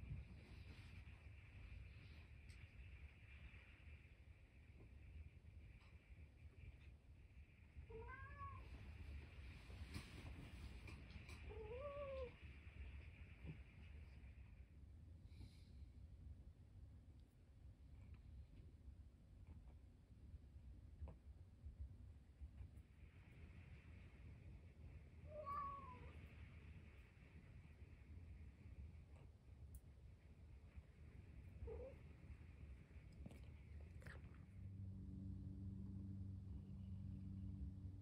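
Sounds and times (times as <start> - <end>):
cat meowing: 7.9 - 8.7, 25.3 - 26.2
cat meowing faintly: 7.9 - 8.8, 11.4 - 12.4, 25.2 - 26.3, 31.6 - 32.0.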